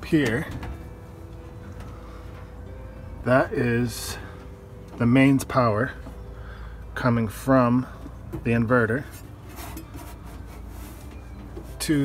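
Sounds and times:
low steady hum: 0.0 - 12.0
rubbing and handling noises: 9.0 - 12.0.

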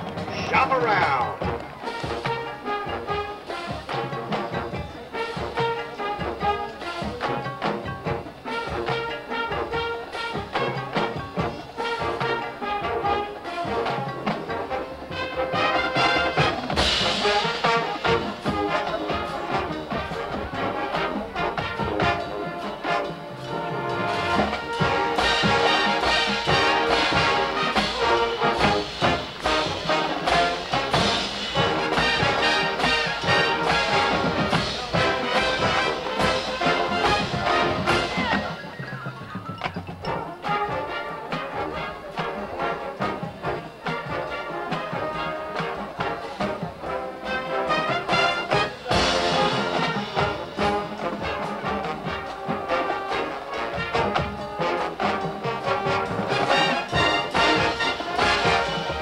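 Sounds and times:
marching band brass playing: 0.0 - 59.0.

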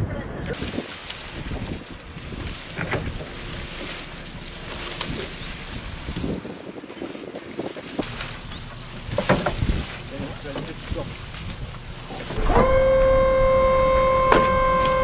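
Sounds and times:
wind on microphone: 0.0 - 15.0
branches rustling and crackling: 0.4 - 15.0
small bird chirping: 0.6 - 2.1, 4.0 - 7.2, 7.9 - 10.1.

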